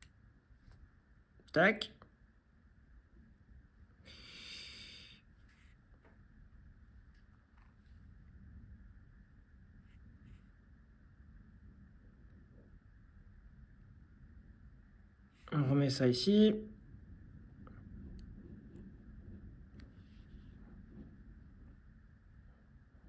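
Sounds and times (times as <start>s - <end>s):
soft breath through the nose: 4.0s - 5.8s.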